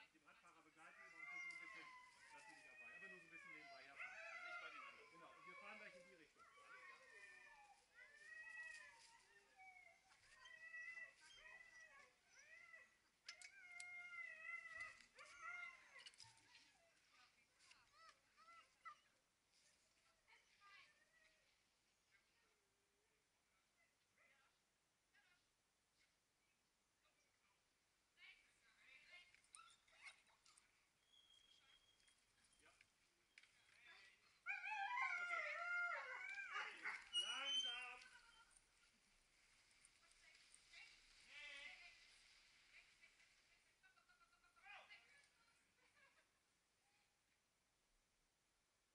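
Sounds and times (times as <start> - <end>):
dogs whining and yowling: 0.8 - 17.0, 34.4 - 38.6.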